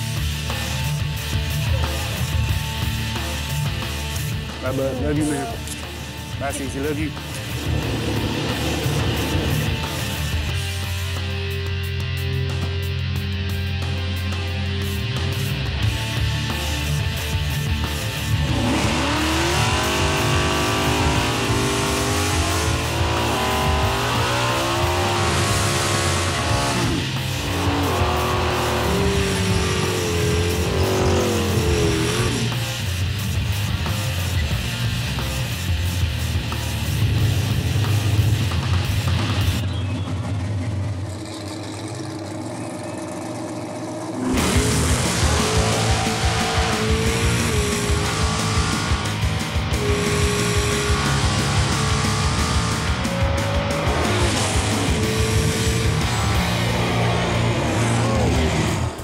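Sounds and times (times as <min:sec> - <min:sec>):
rock music: 0:00.0 - 0:43.0, 0:44.1 - 0:59.0
drag car engines revving: 0:00.0 - 0:59.0
tires squealing: 0:06.5 - 0:10.6, 0:18.3 - 0:32.6, 0:39.2 - 0:59.0.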